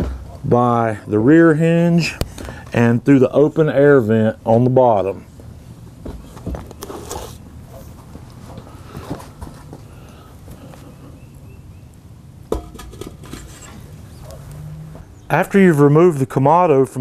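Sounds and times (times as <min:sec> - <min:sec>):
knocks and rustles of handling: 0:06.0 - 0:07.2, 0:07.8 - 0:09.9.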